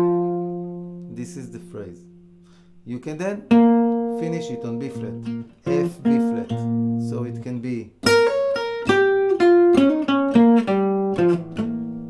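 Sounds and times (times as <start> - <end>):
acoustic guitar picked: 0.0 - 12.0.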